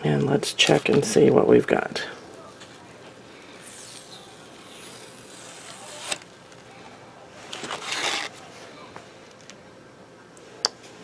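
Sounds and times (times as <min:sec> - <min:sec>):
silkscreen peeling: 0:02.4 - 0:09.6.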